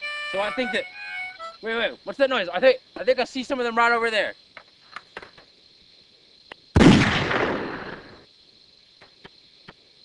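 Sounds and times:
gunshot: 6.8 - 8.2.

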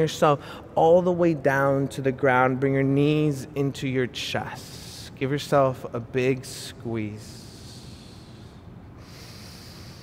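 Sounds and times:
soft slow breathing: 0.4 - 0.8, 7.3 - 10.0.

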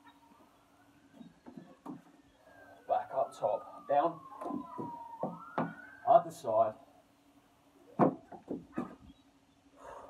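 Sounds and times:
distant siren wailing: 0.0 - 8.0.

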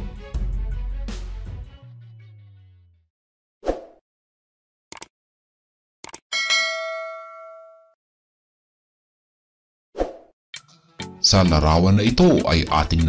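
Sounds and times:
mouse clicks: 4.9 - 5.1
bell ding: 6.3 - 8.0
short swish: 10.0 - 10.3.

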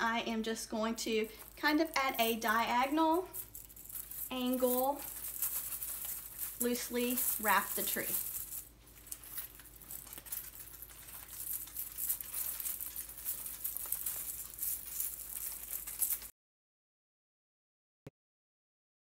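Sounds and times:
ball garland rattling and clicking: 1.0 - 16.3
plastic branches rustling: 3.3 - 16.3.

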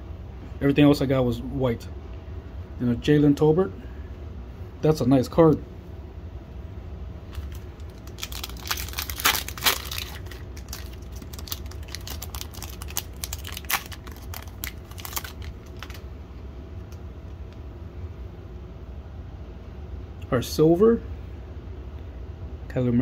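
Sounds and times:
foil wrapper crinkling and tearing: 7.3 - 16.1.

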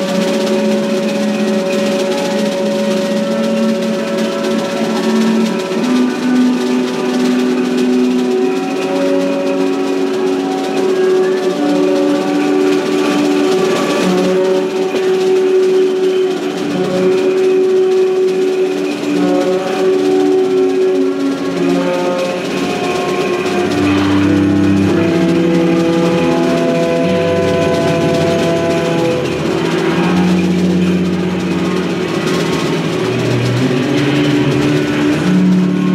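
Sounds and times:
saxophone long notes: 0.0 - 35.9
soft drums: 0.0 - 35.9
trumpet long notes: 0.0 - 35.9.

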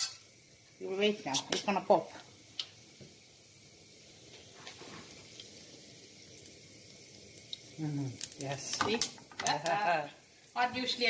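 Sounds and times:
oil sizzling: 0.0 - 11.0.

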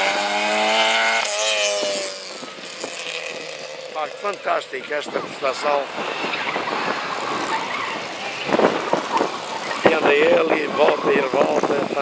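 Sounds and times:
car engine revving: 0.0 - 12.0
tyres and wind rushing: 0.0 - 12.0.

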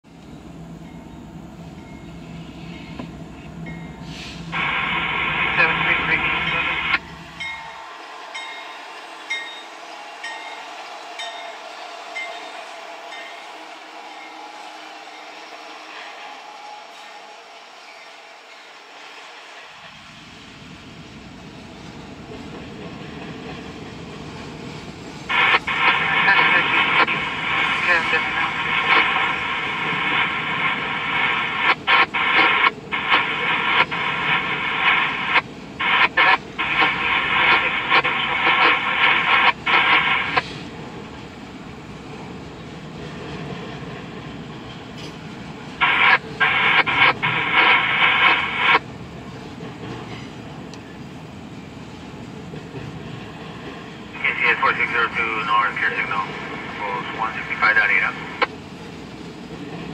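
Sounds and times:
diesel locomotive rumble: 0.0 - 7.6.

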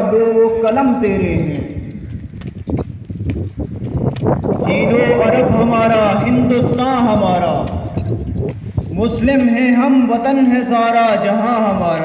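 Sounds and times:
marching boots on brick: 0.0 - 12.0.

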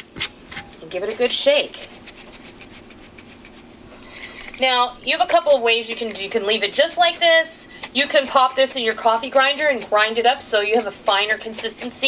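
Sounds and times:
powder shaken in glass jar: 1.0 - 12.0.

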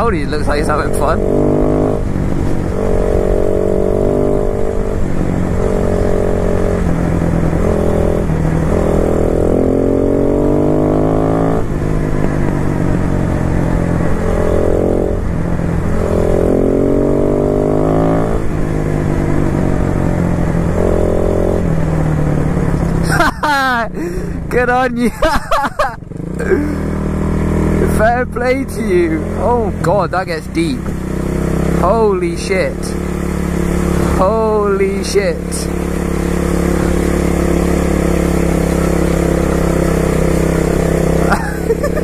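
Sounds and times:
motorcycle engine accelerating: 0.0 - 42.0.

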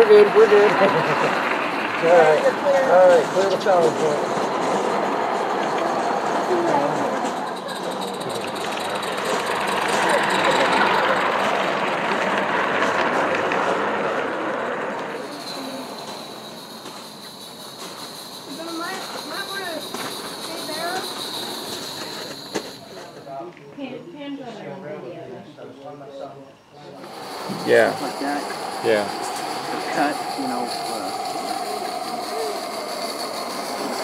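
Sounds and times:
model train wheels rolling on rails: 0.0 - 23.6, 27.0 - 34.0.

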